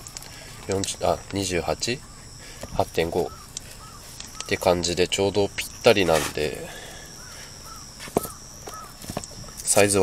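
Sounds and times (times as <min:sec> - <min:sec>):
crow cawing: 0:02.0 - 0:04.9, 0:06.7 - 0:09.1.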